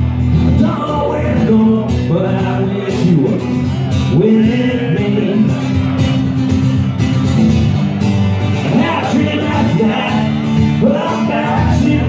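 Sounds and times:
acoustic guitar strummed: 0.0 - 12.0
man singing: 0.4 - 6.0, 8.6 - 12.0.

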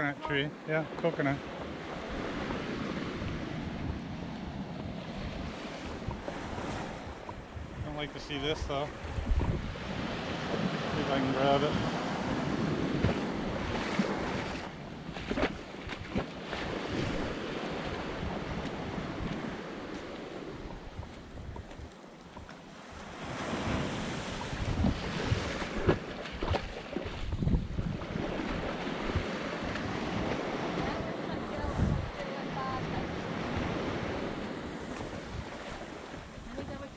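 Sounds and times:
small waves breaking on sand: 0.0 - 36.9
wind gusting on microphone: 1.4 - 21.9, 22.9 - 36.9.

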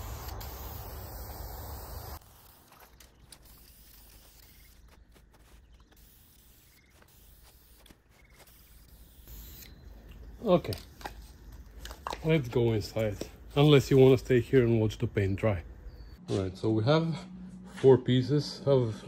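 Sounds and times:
aerosol can spray hissing: 0.0 - 2.2, 6.0 - 9.6.

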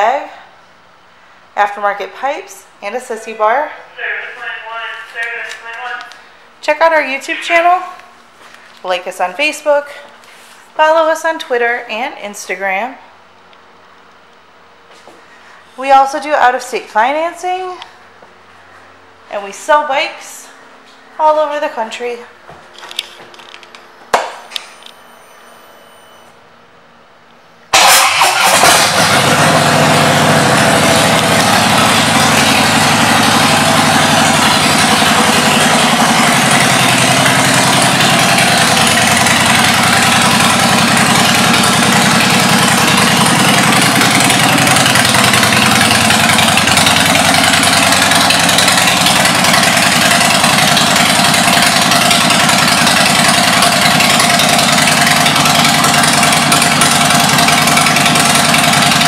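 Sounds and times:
motorcycle engine idling loudly: 27.8 - 59.0.

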